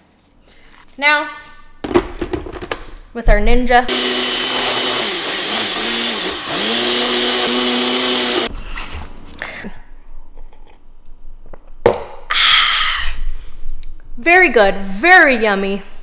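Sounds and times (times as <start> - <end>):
blender motor running: 3.9 - 8.5.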